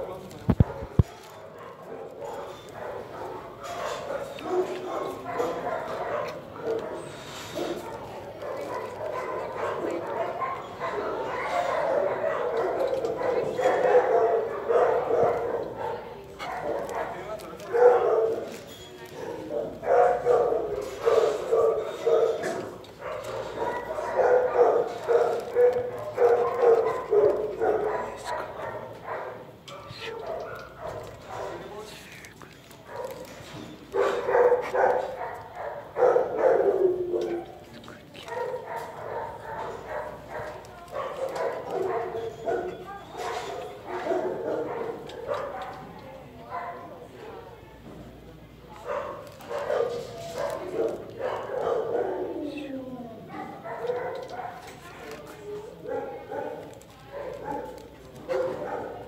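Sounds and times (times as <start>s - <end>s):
dog barking: 0.5s - 31.9s, 32.8s - 47.6s, 48.7s - 52.4s, 53.2s - 59.0s.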